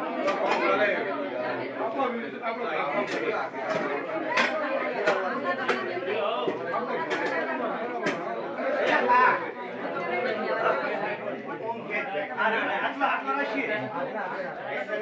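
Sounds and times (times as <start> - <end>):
many people talking: 0.0 - 15.0.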